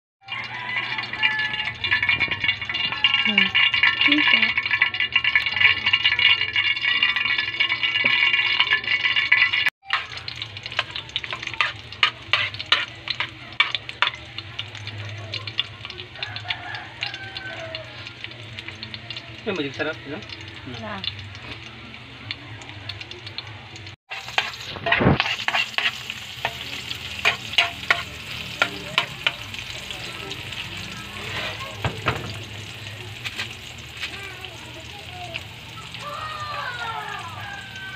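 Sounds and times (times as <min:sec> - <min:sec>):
garlic frying: 0:00.2 - 0:37.9
oil sizzling in a frying pan: 0:00.2 - 0:37.9
metal spoon scraping a pan: 0:00.4 - 0:14.9, 0:24.1 - 0:34.2.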